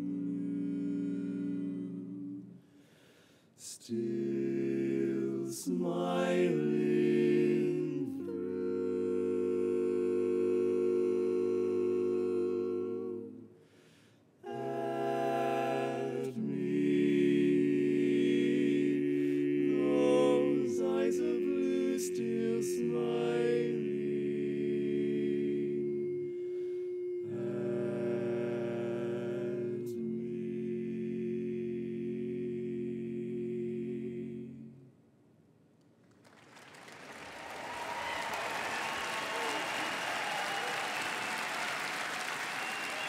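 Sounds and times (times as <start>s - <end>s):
male voices singing a chord: 0.0s - 2.6s, 3.6s - 13.7s, 14.4s - 34.9s.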